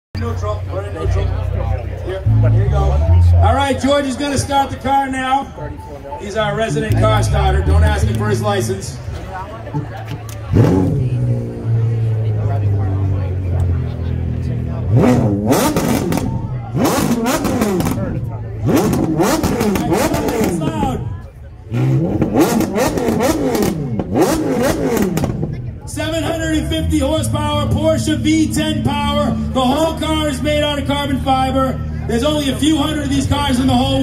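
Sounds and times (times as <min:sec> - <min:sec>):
car engine starting and revving: 0:10.1 - 0:34.0.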